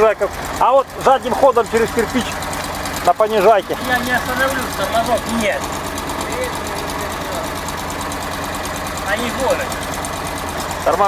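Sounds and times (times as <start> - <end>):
engine running at low revs: 0.0 - 11.0.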